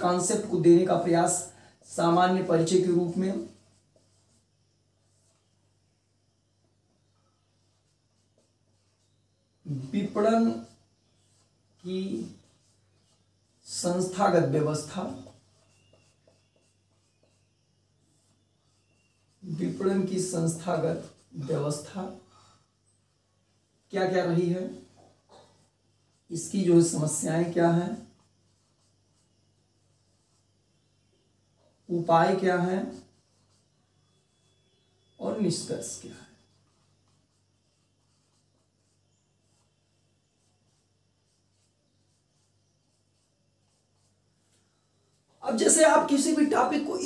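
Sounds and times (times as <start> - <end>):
marker writing on whiteboard: 0.0 - 47.0.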